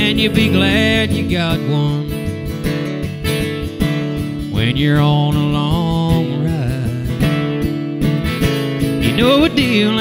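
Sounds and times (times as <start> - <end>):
acoustic guitars strumming: 0.0 - 10.0.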